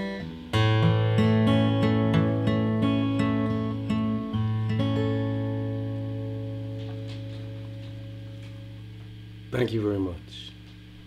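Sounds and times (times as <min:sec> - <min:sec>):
acoustic guitar fingerpicked: 0:00.0 - 0:09.3.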